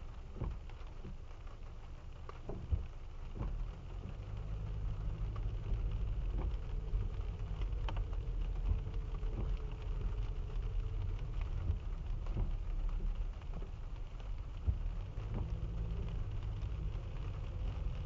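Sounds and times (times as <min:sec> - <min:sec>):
car engine rumble: 0:00.0 - 0:18.0
rain pattering on car windshield: 0:00.0 - 0:18.0.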